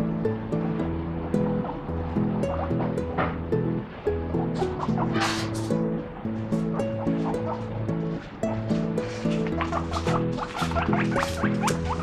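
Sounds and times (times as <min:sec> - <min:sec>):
background music: 0:00.0 - 0:12.0
guinea pig squealing: 0:09.5 - 0:12.0.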